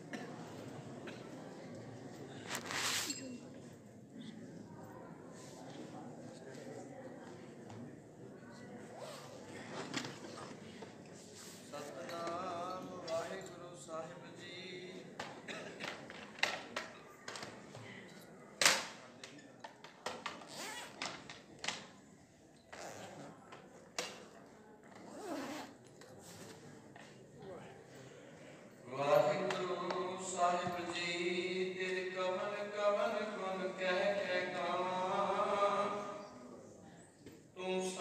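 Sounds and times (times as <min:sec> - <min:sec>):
man chanting prayer: 0:28.9 - 0:36.2, 0:37.6 - 0:38.0.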